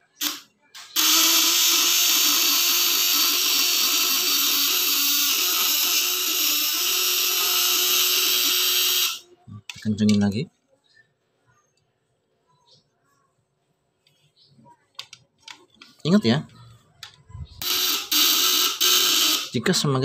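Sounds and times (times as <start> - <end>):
loud crackling electric buzz: 1.0 - 9.2, 17.6 - 19.6.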